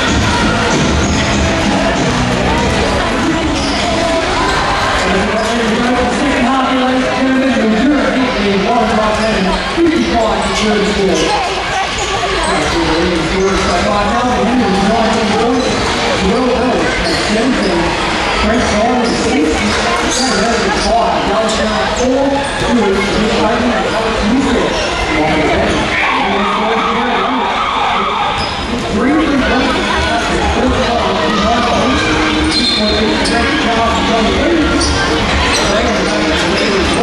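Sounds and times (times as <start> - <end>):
crowd noise: 0.0 - 37.0
many voices talking: 0.0 - 37.0.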